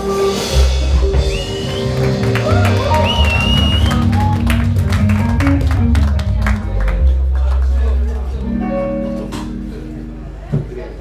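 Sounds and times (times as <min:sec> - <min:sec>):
live reggae band: 0:00.0 - 0:11.0.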